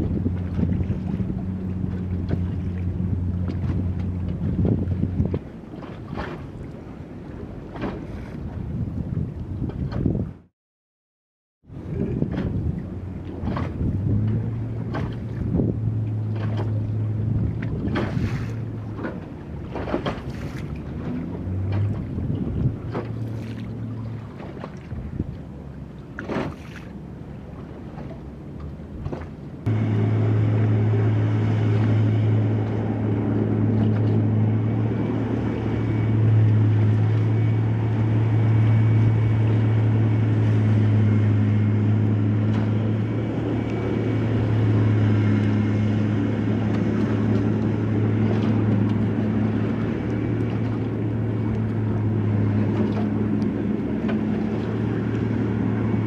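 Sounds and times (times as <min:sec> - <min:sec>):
low engine drone: 0:00.0 - 0:10.5, 0:11.6 - 0:56.0
wind on microphone: 0:00.0 - 0:10.5, 0:11.7 - 0:26.9
low steady hum: 0:11.7 - 0:56.0.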